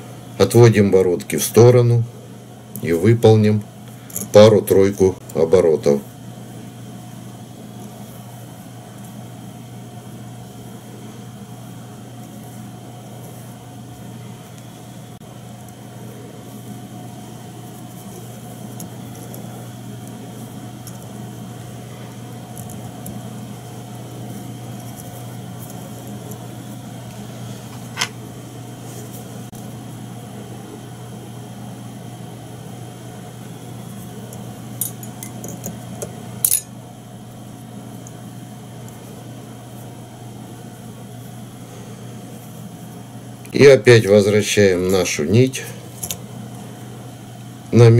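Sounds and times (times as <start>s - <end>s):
mechanical hum with faint whine: 0.0s - 47.9s.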